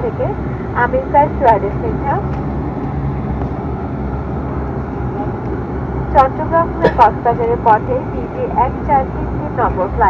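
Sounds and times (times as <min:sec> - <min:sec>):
cabin announcement voice: 0:00.0 - 0:02.3, 0:06.1 - 0:10.0
turboprop engines droning: 0:00.0 - 0:10.0.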